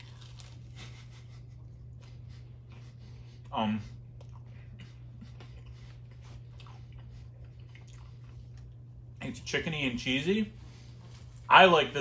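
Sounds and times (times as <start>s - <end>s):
crunching and chewing: 0.0s - 9.2s
steady low hum: 0.0s - 12.0s.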